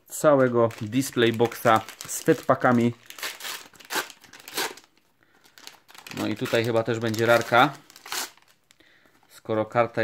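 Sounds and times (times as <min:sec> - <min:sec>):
plastic wrapper crinkling: 0:00.1 - 0:09.4.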